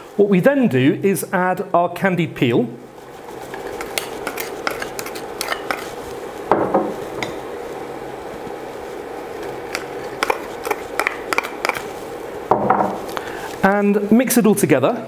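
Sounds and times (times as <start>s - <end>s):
spatula scraping a bowl: 3.3s - 6.0s.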